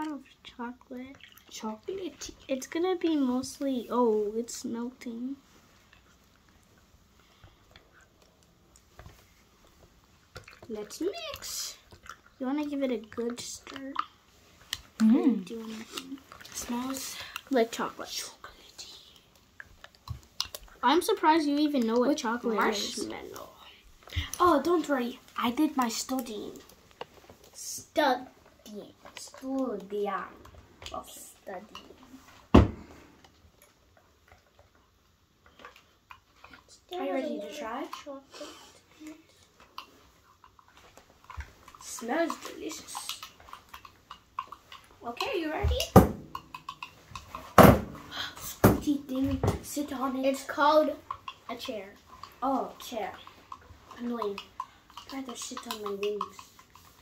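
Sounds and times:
plastic spoon stirring in mug: 39.3s - 47.5s, 48.4s - 57.0s.

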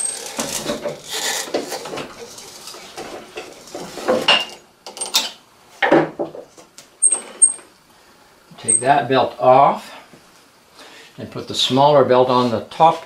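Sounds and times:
belt rubbing and scraping on pulleys: 0.0s - 4.3s.

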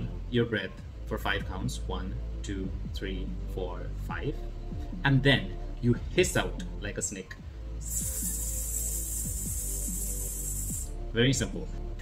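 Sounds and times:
man hissing breath through teeth: 7.8s - 10.9s.

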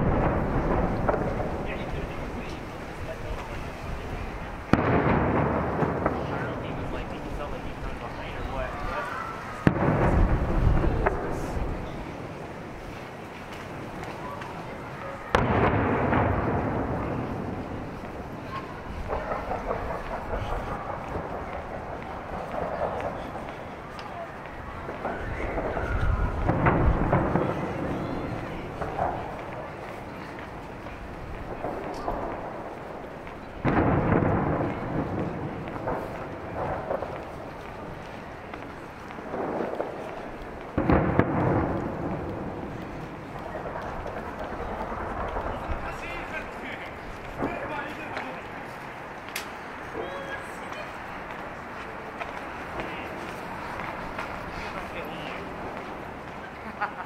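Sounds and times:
distant fireworks booming: 0.0s - 56.9s.

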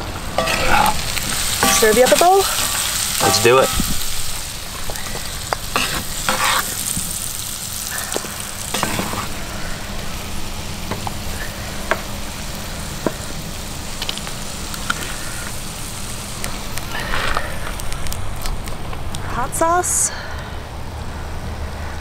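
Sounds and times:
food sizzling in skillet: 0.0s - 18.7s.

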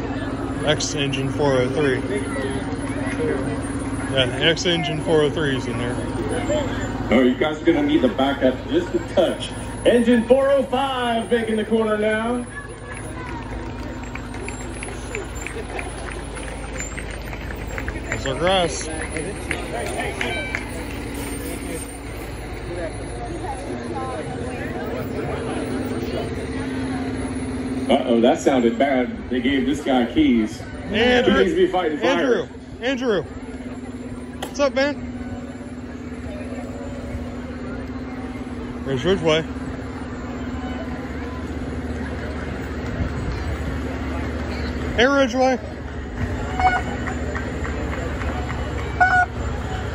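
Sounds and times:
diesel engine running low: 0.0s - 49.9s
outdoor crowd background: 0.0s - 49.9s.

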